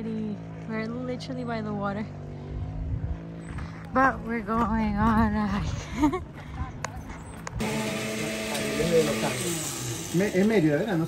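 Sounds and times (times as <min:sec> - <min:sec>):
countertop blender running: 0:07.6 - 0:11.0.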